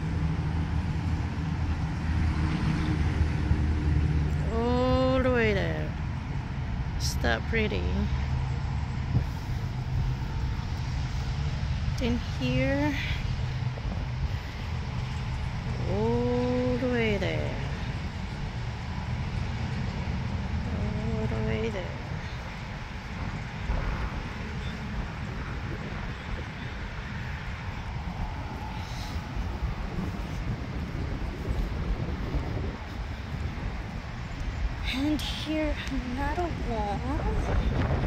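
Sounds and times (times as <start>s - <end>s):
low outdoor rumble: 0.0s - 38.0s.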